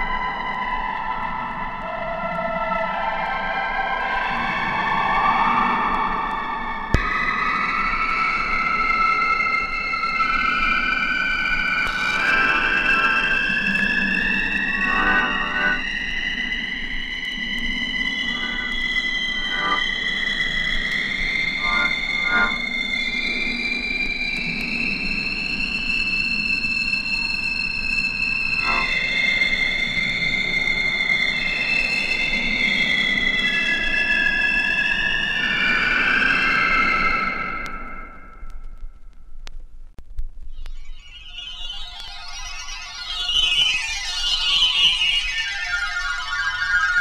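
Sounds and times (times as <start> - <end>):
low hum: 11.8 - 22.8
sliding synthesizer tones: 11.9 - 15.9, 18.0 - 20.0, 21.5 - 22.7, 28.6 - 29.0, 40.5 - 47.0
brief pulsing flickers: 18.2 - 18.8.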